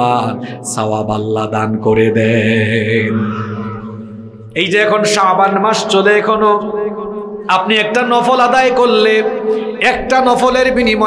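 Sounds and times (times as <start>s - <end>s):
man chanting: 0.0s - 6.7s.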